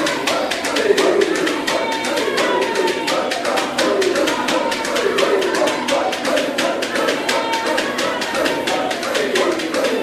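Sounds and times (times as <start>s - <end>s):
rhythmic sharp taps: 0.0s - 10.0s
wavering voices: 0.0s - 10.0s.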